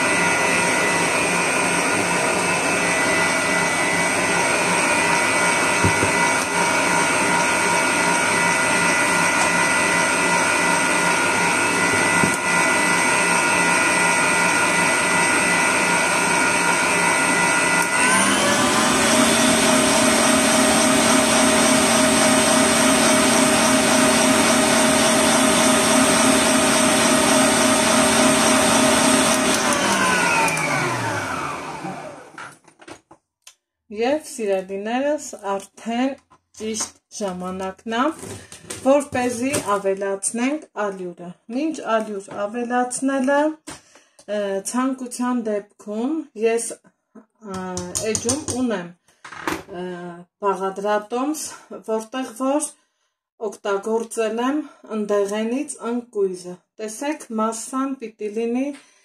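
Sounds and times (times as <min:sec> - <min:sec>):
electric stand mixer whisking: 0:00.0 - 0:32.5.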